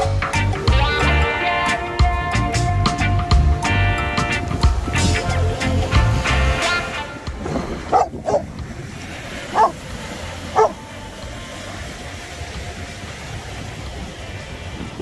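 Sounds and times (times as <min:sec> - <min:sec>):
surf: 0:00.0 - 0:15.0
wind: 0:00.0 - 0:15.0
dog barking: 0:07.8 - 0:08.5, 0:09.5 - 0:09.8, 0:10.5 - 0:10.8.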